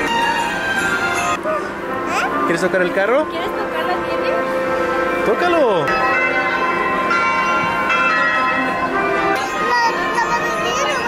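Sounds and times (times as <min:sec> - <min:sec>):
bells chiming: 0:00.0 - 0:11.0.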